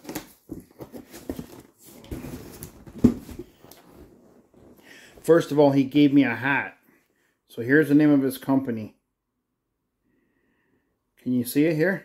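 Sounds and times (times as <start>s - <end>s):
cardboard box rustling and scraping: 0.3s - 4.7s.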